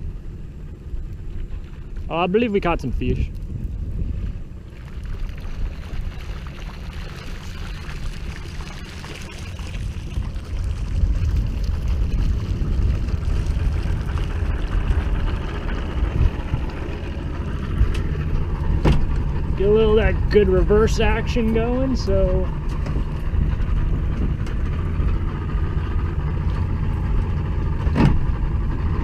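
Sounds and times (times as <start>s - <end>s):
outboard motor rumbling: 0.0s - 29.0s
wind on microphone: 0.0s - 29.0s.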